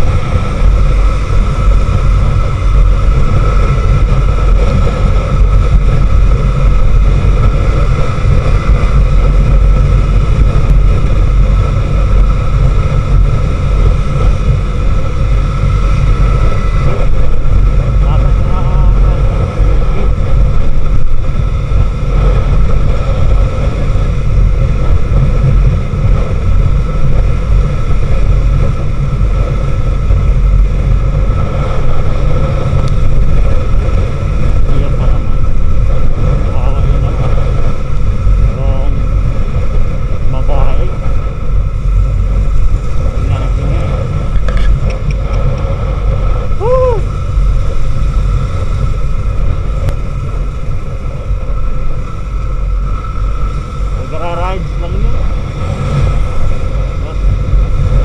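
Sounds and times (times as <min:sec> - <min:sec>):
motorcycle engine running: 0:00.0 - 0:58.0
steady high whine: 0:00.0 - 0:58.0
wind buffeting microphone: 0:00.0 - 0:58.0.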